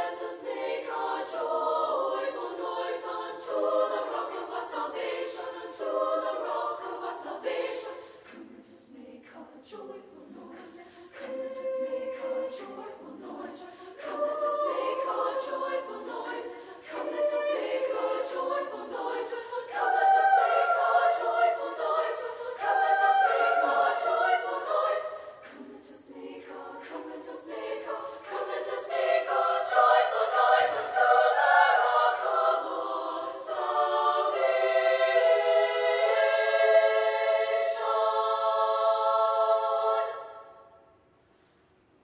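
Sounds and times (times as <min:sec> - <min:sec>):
women's choir singing: 0:00.0 - 0:40.9.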